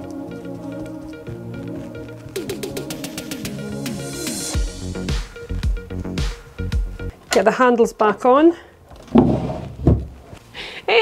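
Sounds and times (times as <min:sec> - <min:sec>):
wooden drawer sliding shut: 0:09.0 - 0:10.2.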